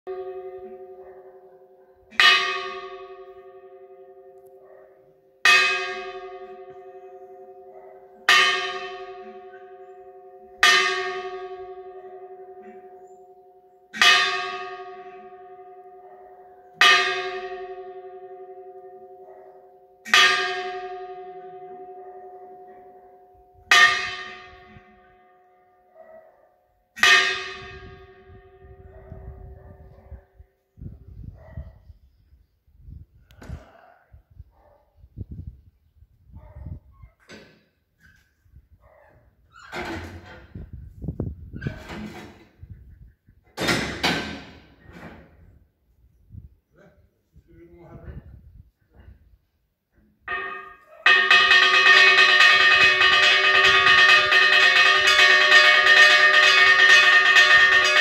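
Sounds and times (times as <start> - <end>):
church bell strokes: 0.1 - 25.5, 27.0 - 29.9, 50.3 - 58.0.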